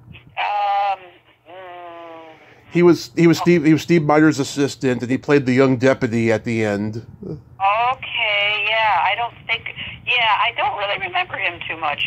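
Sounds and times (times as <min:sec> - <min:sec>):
person hesitation sounds: 0:00.2 - 0:03.8, 0:07.0 - 0:08.1.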